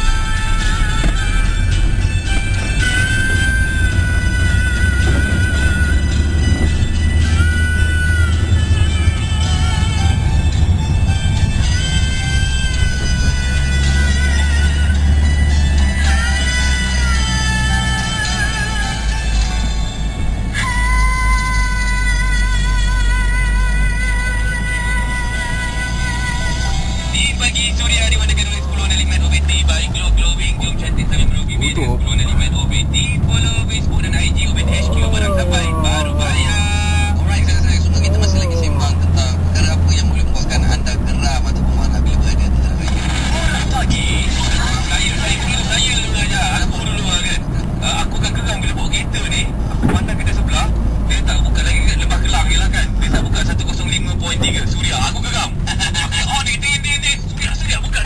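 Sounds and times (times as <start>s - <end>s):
music: 0.0s - 41.3s, 42.2s - 48.3s
car engine and road noise: 0.0s - 58.0s
voices: 27.1s - 58.0s.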